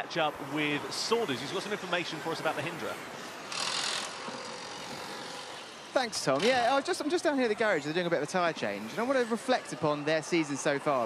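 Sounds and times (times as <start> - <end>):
race car tyre and air hiss: 0.1 - 6.7.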